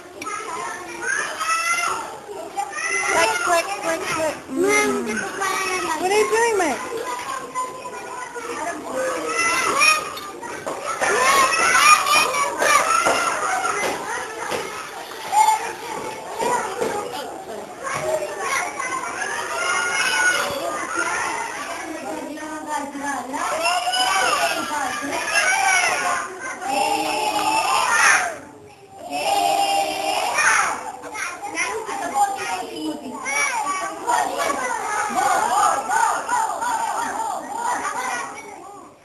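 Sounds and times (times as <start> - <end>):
young children chattering: 0.0 - 39.0.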